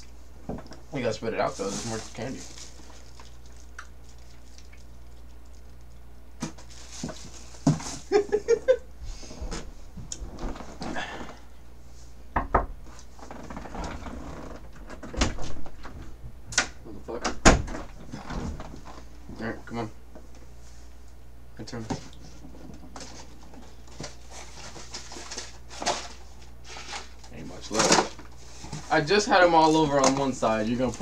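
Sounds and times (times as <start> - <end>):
rustling: 1.4 - 4.8.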